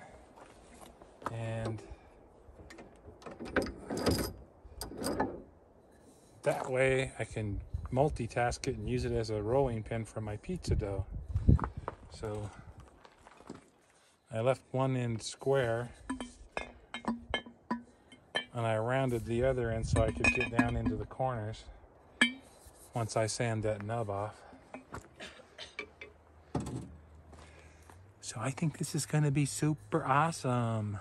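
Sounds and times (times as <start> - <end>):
wooden stomper clinking glass jar: 16.1 - 18.6, 20.0 - 21.1.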